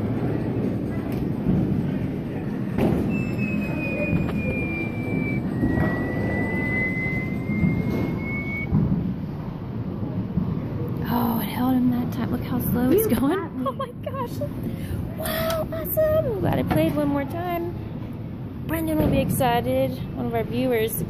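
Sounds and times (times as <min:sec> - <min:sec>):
long electronic tones: 0:03.1 - 0:08.7.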